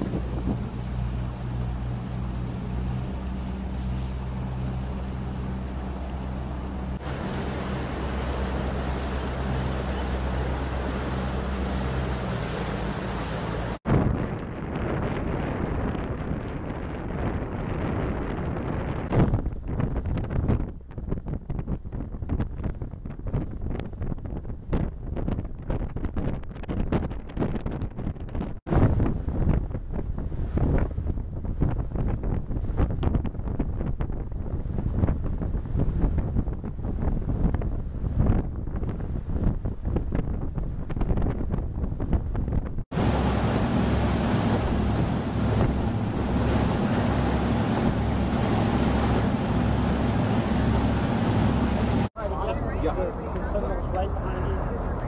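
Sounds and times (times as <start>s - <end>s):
boat engine humming: 0.0s - 20.1s, 33.6s - 55.0s
water rushing past boat: 0.0s - 55.0s
wind buffeting microphone: 0.0s - 55.0s.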